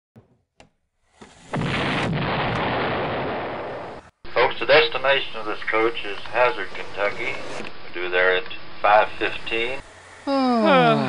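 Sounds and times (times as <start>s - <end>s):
explosion rushing noise: 1.5s - 4.1s.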